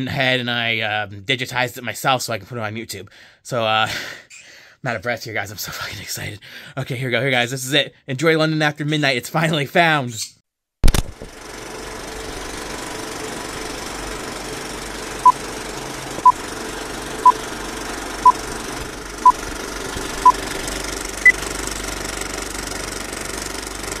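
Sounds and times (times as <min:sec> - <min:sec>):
film projector rattle: 0:10.9 - 0:24.0.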